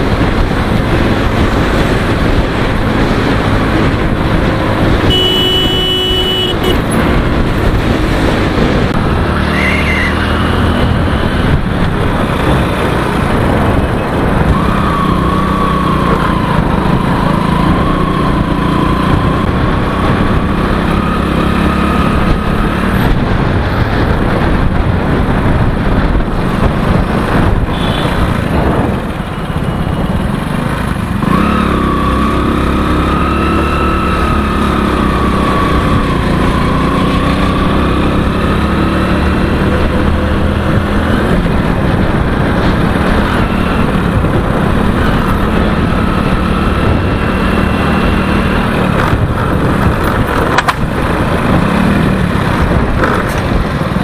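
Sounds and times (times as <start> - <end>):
motorcycle engine running: 0.0 - 54.0.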